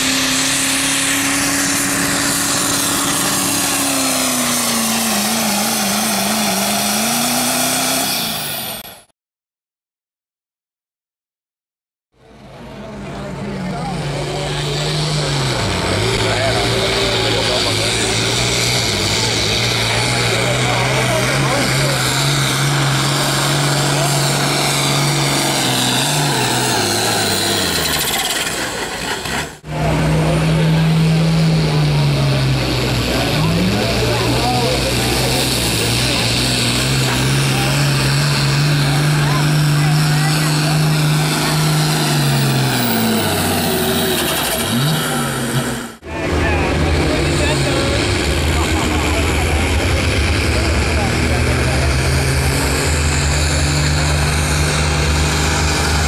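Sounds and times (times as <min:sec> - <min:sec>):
diesel tractor engine revving hard: 0:00.0 - 0:09.1, 0:12.2 - 0:56.0.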